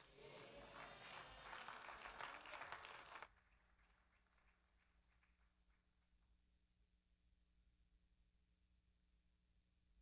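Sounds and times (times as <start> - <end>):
congregation applauding: 0.0 - 5.0.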